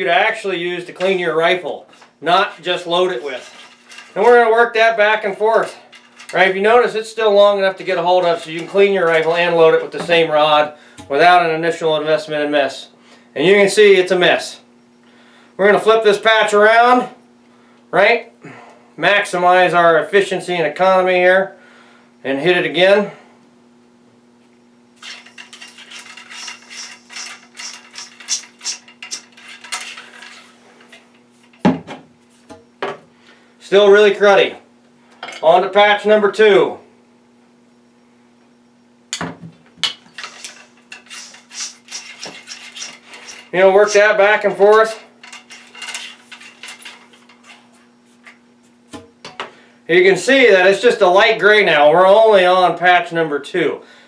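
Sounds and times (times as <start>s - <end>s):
faint steady hum: 0.0s - 54.0s
ramrod scraping in rifle bore: 25.0s - 30.6s, 40.2s - 44.0s
rod scraping inside gun barrel: 40.2s - 44.1s.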